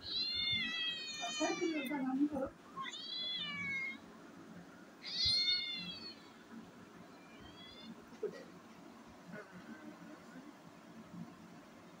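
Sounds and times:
young cat meowing: 0:00.0 - 0:02.0, 0:02.8 - 0:04.0, 0:05.0 - 0:06.3.

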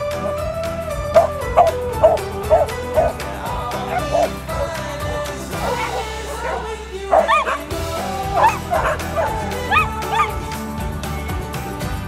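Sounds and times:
background music with beat: 0:00.0 - 0:12.0
dog barking: 0:05.6 - 0:07.7, 0:08.4 - 0:10.4.

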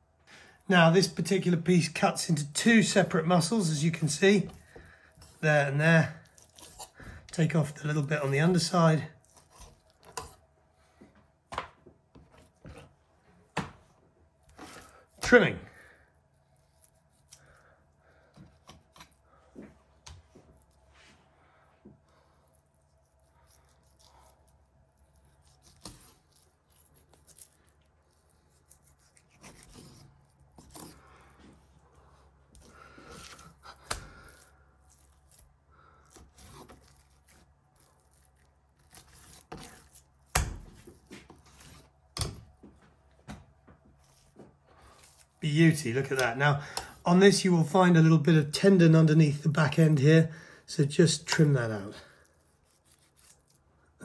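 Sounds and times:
knife slicing and scraping meat: 0:02.3 - 0:10.4, 0:15.8 - 0:17.6, 0:18.3 - 0:19.2, 0:22.4 - 0:31.4, 0:32.5 - 0:42.4, 0:44.0 - 0:47.0, 0:51.1 - 0:53.7.

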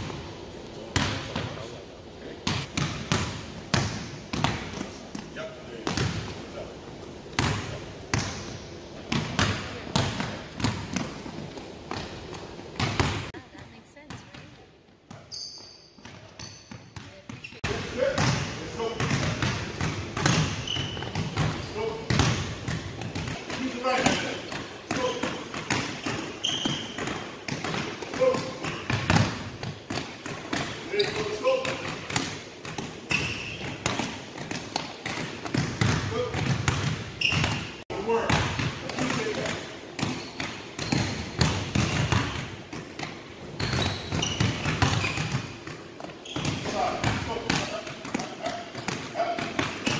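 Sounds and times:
basketballs bouncing on wood floor: 0:02.4 - 0:06.4, 0:07.3 - 0:15.3, 0:16.0 - 0:49.9.

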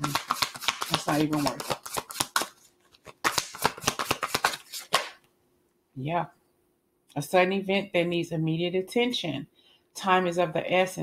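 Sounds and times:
cards being shuffled: 0:00.0 - 0:05.2.

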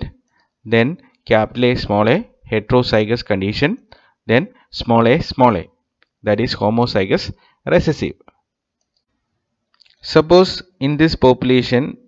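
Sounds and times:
narrator speaking: 0:00.7 - 0:08.3, 0:10.0 - 0:12.0.

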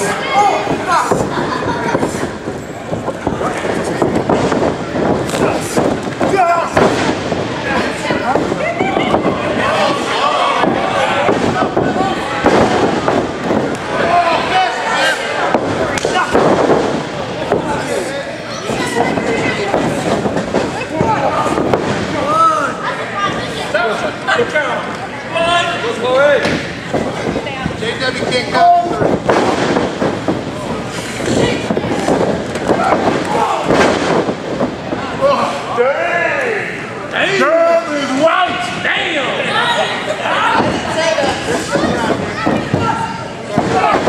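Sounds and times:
wrestlers smacking and thudding: 0:00.0 - 0:22.4, 0:26.4 - 0:35.7, 0:40.4 - 0:44.0
crowd shouting: 0:05.4 - 0:16.6.

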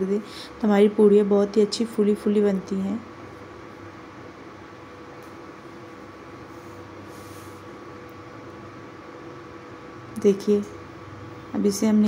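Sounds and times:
thin even cooktop hum: 0:00.0 - 0:12.0.

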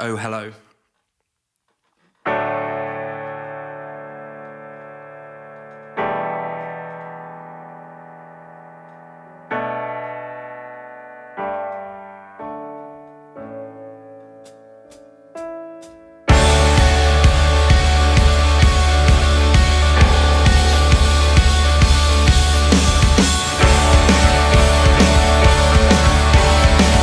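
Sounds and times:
piano chords on keyboard: 0:02.3 - 0:27.0.

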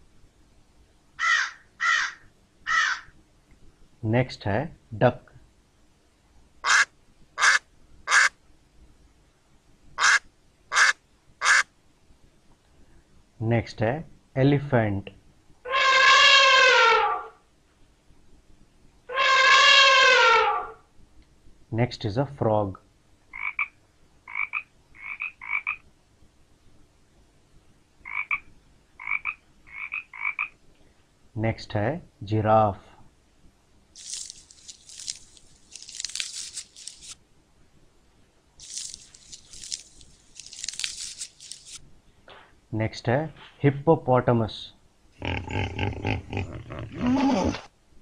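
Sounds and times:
duck quacking: 0:06.6 - 0:08.3, 0:10.0 - 0:11.7
frog croaking: 0:06.6 - 0:08.3, 0:10.0 - 0:11.7, 0:23.3 - 0:25.8, 0:28.0 - 0:30.6.

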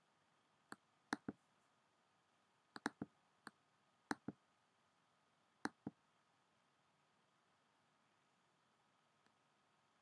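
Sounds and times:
computer mouse clicking: 0:00.7 - 0:01.4, 0:02.8 - 0:03.1, 0:04.1 - 0:04.4.

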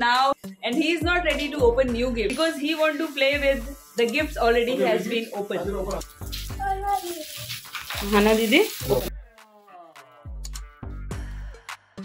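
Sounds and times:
wrapping paper crinkling and tearing: 0:06.0 - 0:09.1
child's voice: 0:06.5 - 0:07.5.

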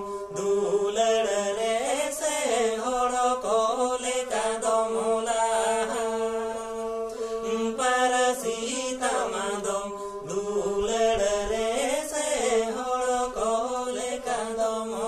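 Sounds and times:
men singing together: 0:00.0 - 0:15.0.

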